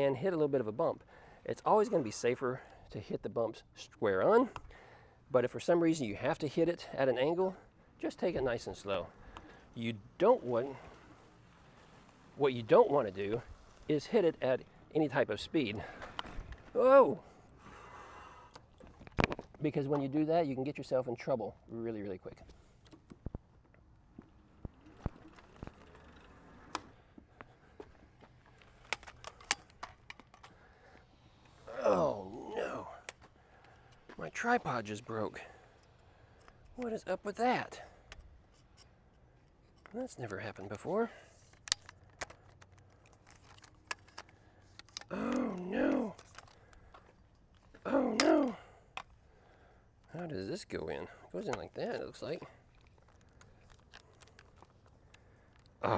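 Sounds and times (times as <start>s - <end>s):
man making wordless sounds: 16.7s - 17.3s, 31.7s - 33.1s, 45.1s - 46.2s, 47.8s - 48.7s
clicks and knocks of handling: 18.6s - 20.1s, 27.8s - 31.1s, 41.4s - 45.4s, 46.1s - 48.3s, 51.4s - 55.8s.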